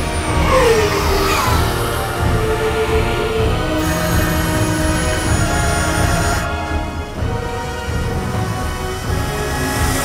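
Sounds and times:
film score music: 0:00.0 - 0:10.0
motorcycle engines running: 0:00.0 - 0:10.0.

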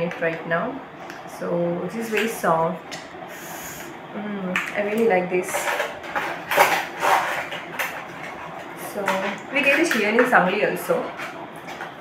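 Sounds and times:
plastic container rustling: 0:05.3 - 0:12.0.

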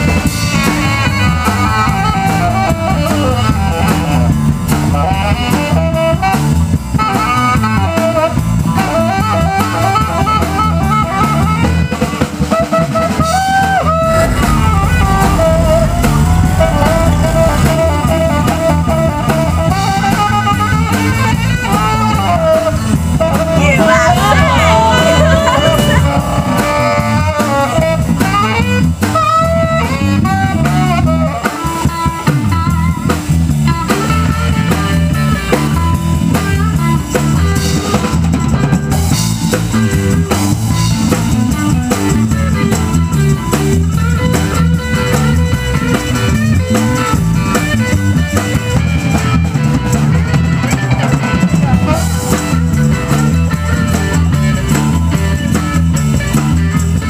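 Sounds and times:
saxophone melody: 0:00.0 - 0:33.1
drum kit: 0:00.0 - 0:57.0
walking electric bass line: 0:00.0 - 0:57.0.

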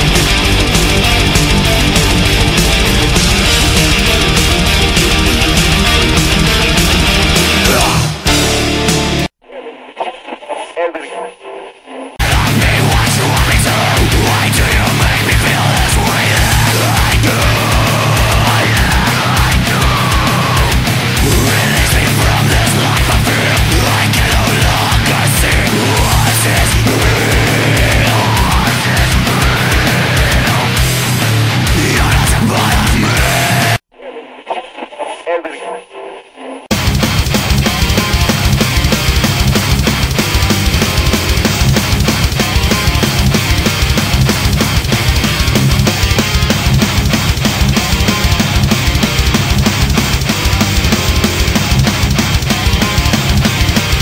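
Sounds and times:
heavy metal music: 0:00.0 - 0:09.4, 0:12.2 - 0:33.9, 0:36.6 - 0:54.0
voice through radio: 0:07.6 - 0:08.1, 0:09.4 - 0:30.9, 0:31.7 - 0:36.7
radio tuning static: 0:09.4 - 0:31.1, 0:31.7 - 0:36.7.

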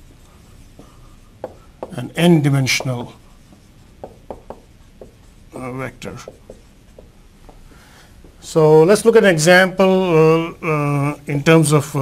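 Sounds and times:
marker writing on a whiteboard: 0:00.8 - 0:08.5.

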